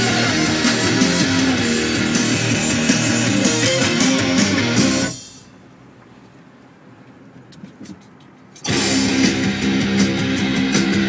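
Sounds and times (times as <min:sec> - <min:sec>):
loud guitar music: 0:00.0 - 0:05.4, 0:08.7 - 0:11.0
car cabin noise: 0:00.0 - 0:11.0.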